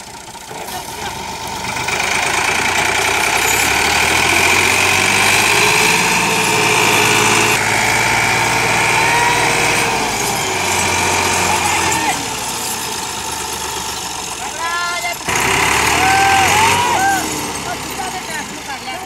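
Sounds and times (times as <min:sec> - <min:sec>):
tractor engine under heavy load: 0:00.0 - 0:19.0.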